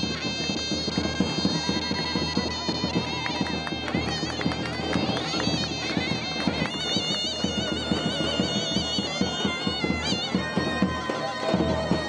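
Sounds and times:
reedy shawm melody: 0:00.0 - 0:12.0
bass drumbeats: 0:00.7 - 0:12.0.

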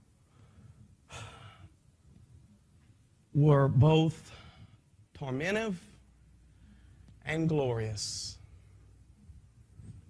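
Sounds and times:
man sighing: 0:01.1 - 0:01.7.

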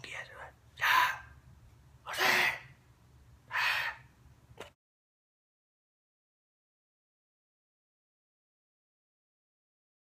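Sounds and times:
man whispering loudly: 0:00.0 - 0:01.2.

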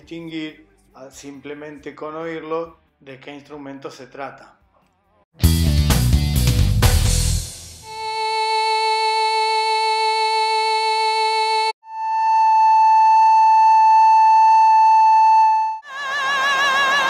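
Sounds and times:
sustained recorder note: 0:07.8 - 0:17.0
sustained violin note: 0:07.8 - 0:17.0.

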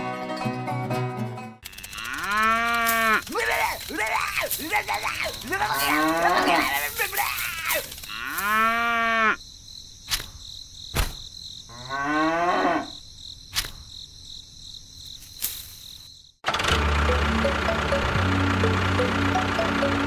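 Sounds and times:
loud wavering animal calls: 0:01.7 - 0:09.4.

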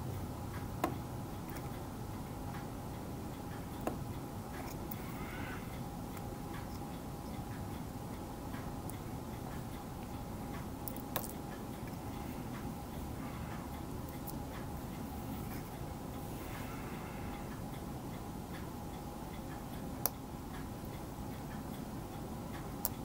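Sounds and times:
faint steady hum: 0:00.0 - 0:23.0.

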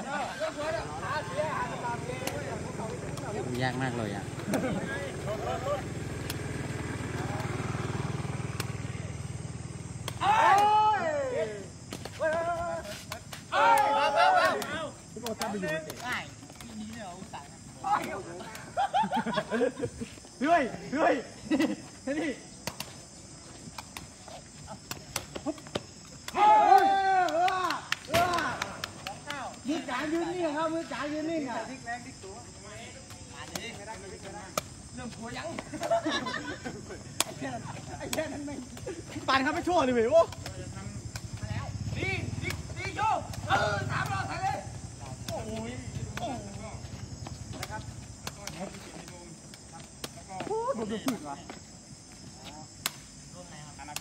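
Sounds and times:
voices: 0:00.0 - 0:54.0.

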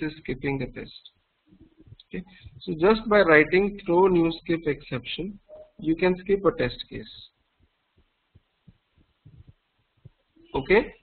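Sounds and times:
faint low knocks: 0:07.6 - 0:10.2.

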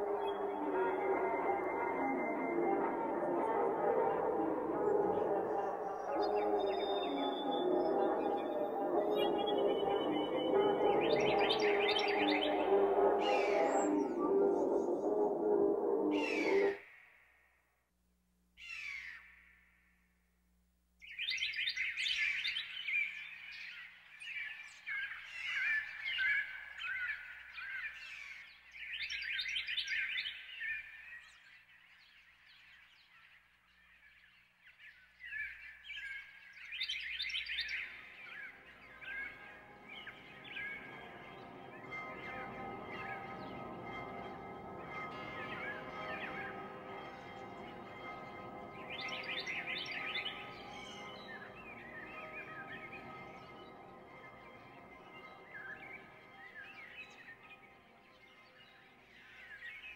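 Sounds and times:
sustained layered chord: 0:00.0 - 0:16.8, 0:37.8 - 0:59.4
recorded bird chirps gliding: 0:00.0 - 0:17.5, 0:21.0 - 0:59.9.

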